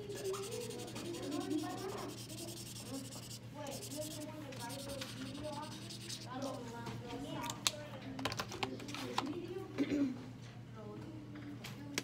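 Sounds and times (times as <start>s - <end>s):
faint voices: 0.0s - 10.2s.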